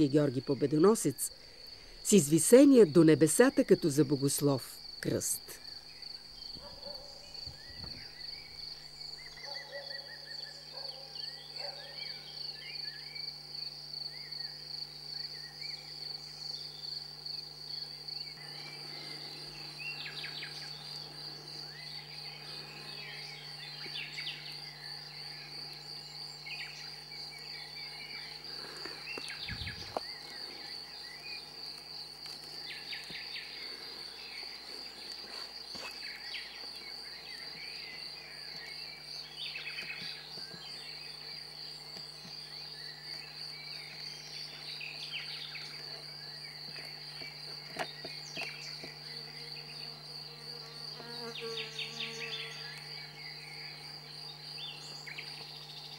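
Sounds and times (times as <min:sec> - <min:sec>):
insect trilling: 0:00.0 - 0:55.9
bird chirps and song: 0:05.9 - 0:13.3, 0:18.4 - 0:31.5, 0:36.0 - 0:49.8, 0:51.2 - 0:55.9.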